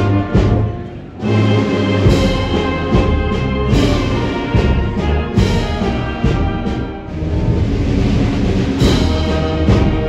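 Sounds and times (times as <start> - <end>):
brass and drum band march: 0.0 - 10.0.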